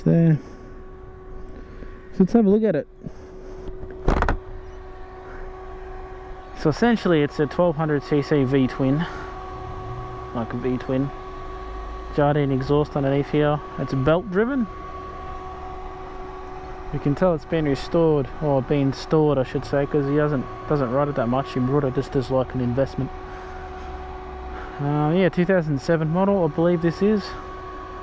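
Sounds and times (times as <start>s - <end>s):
faint steady whine: 0.0s - 28.0s
low background hum: 0.0s - 28.0s.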